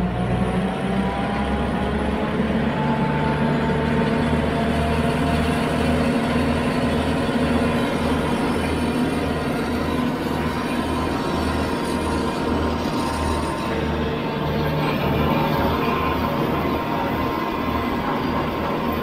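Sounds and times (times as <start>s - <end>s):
tractor diesel engine under load: 0.0s - 19.0s
rotary cutter through grass: 4.2s - 18.9s.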